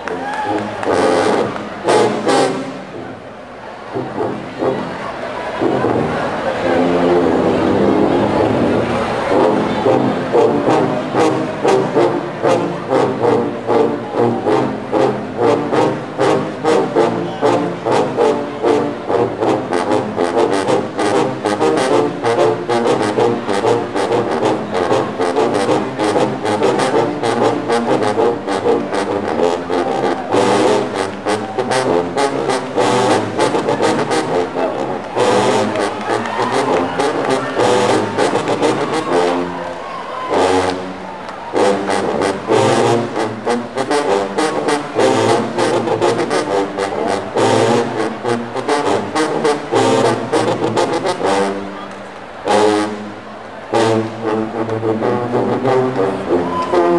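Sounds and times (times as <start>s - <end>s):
sousaphones playing rhythmic riff: 0.0s - 56.9s.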